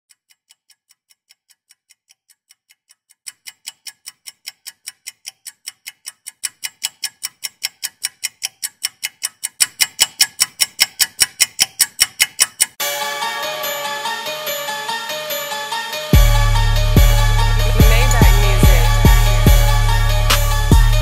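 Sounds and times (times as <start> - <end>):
clock-like ticking: 0.1 - 12.9, 16.1 - 21.0.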